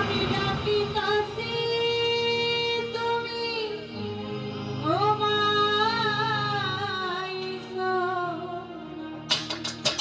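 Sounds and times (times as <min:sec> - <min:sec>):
woman singing folk song: 0:00.0 - 0:08.8
musical accompaniment: 0:00.0 - 0:10.0.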